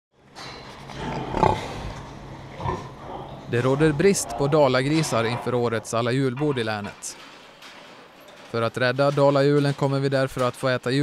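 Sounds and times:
pig grunting: 0.9 - 6.0.

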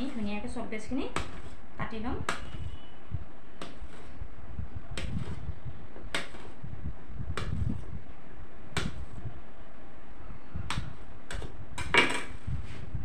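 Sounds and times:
knife cutting soap: 1.1 - 1.6, 3.6 - 4.2, 4.9 - 6.6.

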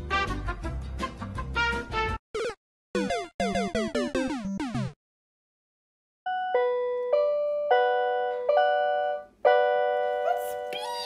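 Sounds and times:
electronic keyboard notes: 6.3 - 11.0
person speaking: 10.2 - 11.0.

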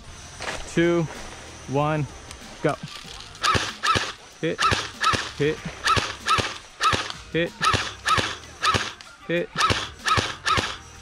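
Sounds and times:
airsoft gun single shots: 3.4 - 9.0, 9.6 - 10.8.

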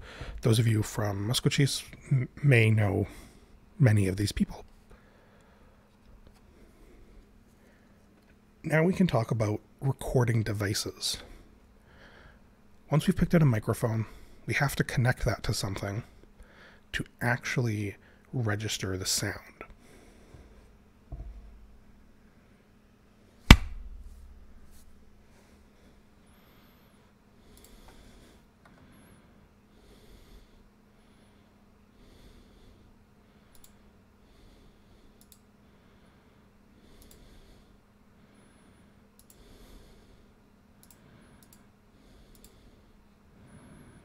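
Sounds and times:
low electrical hum: 0.0 - 44.0
sharp knock: 23.5 - 24.1
computer mouse clicks: 33.5 - 33.8, 35.2 - 35.4, 37.0 - 37.2, 39.2 - 39.4, 40.8 - 41.6, 42.3 - 42.6.

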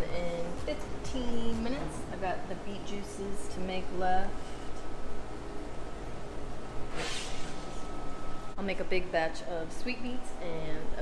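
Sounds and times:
refrigeration hum: 0.0 - 11.0.

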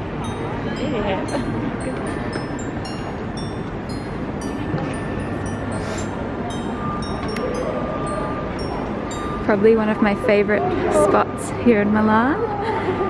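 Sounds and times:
faint held tone: 0.0 - 10.8.

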